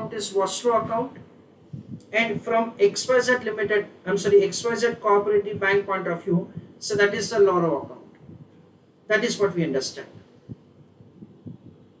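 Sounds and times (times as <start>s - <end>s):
faint low thumps: 0.8s - 2.6s, 7.8s - 8.8s, 10.0s - 12.0s
low hum: 7.6s - 9.1s, 9.9s - 12.0s.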